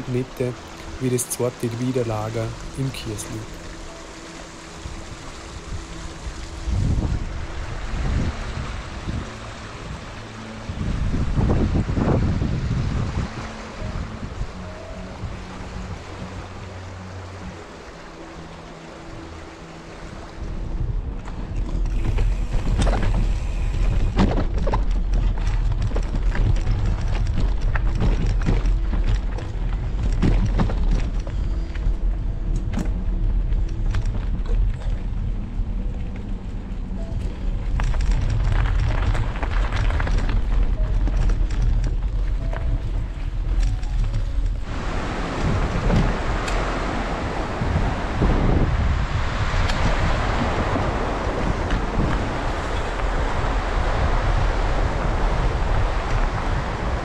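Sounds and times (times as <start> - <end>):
wind noise on microphone: 0.0 - 57.0
bike clicking and rattling: 21.3 - 35.3, 37.0 - 44.7.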